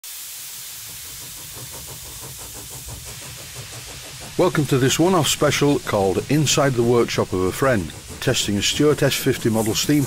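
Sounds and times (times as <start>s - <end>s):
steam hissing: 0.0s - 10.0s
steam engine exhaust beat: 0.1s - 10.0s.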